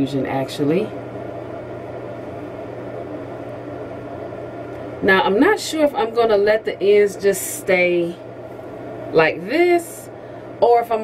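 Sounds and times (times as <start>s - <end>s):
room noise hum and hiss: 0.0s - 11.0s.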